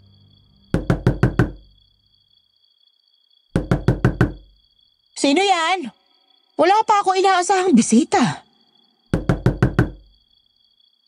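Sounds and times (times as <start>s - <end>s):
knocking on a door: 0.7s - 1.7s, 3.6s - 4.6s, 9.1s - 10.1s.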